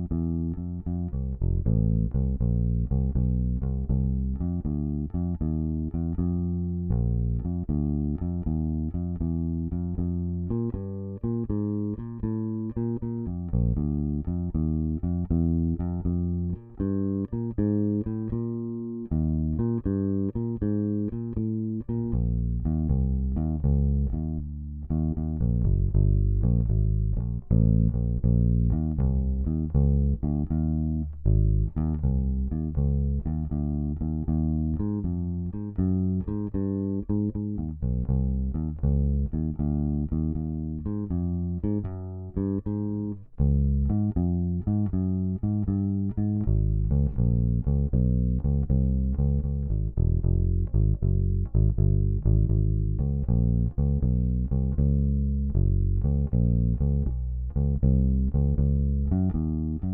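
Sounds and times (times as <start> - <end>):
bass guitar plucked notes: 0.0 - 59.9.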